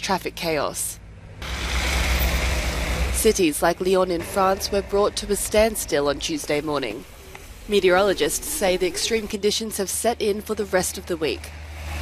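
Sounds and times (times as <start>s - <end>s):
car engines running: 0.0s - 12.0s
tyre noise on snowy road: 1.4s - 9.4s
low rumble: 2.6s - 9.9s.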